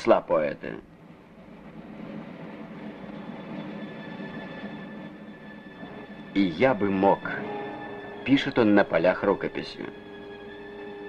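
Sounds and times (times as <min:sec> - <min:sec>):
low rumbling drone: 0:00.8 - 0:11.0.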